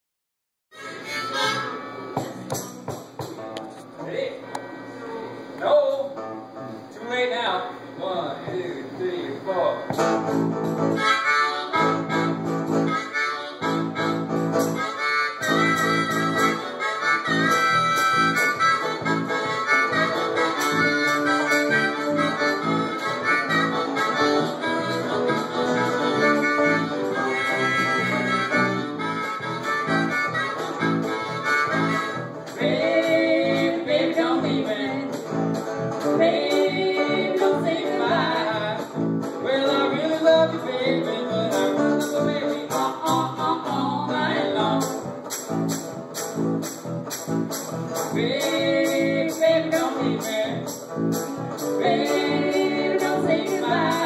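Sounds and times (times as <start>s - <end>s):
harmonica playing bending lines: 0.7s - 2.3s, 9.9s - 54.0s
blues band playing: 0.7s - 5.0s, 9.8s - 54.0s
strummed acoustic guitar: 0.8s - 4.0s, 9.8s - 54.0s.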